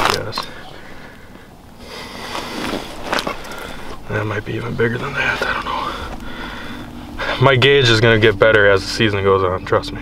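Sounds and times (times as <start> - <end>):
rustling of gloves and clothing: 1.9 - 4.2.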